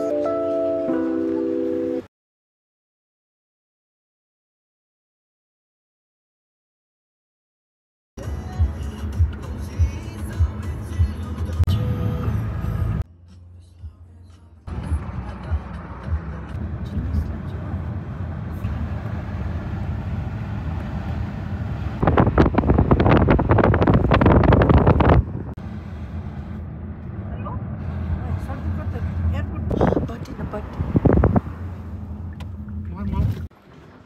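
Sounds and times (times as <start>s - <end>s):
car road and engine rumble: 8.2s - 34.0s.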